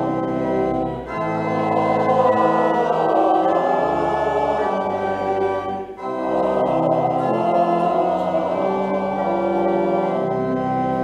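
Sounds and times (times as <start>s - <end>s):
organ: 0.0s - 11.0s
choir singing: 1.1s - 11.0s.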